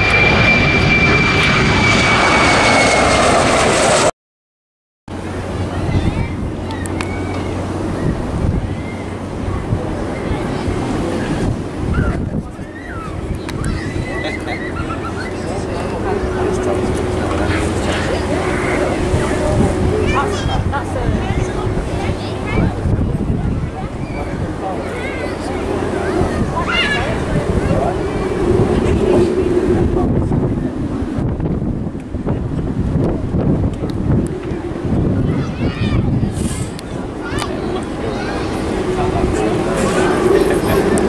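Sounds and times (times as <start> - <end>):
jet engines humming: 0.0 - 4.1, 5.1 - 41.0
wind rumbling on microphone: 0.0 - 4.1, 5.1 - 41.0.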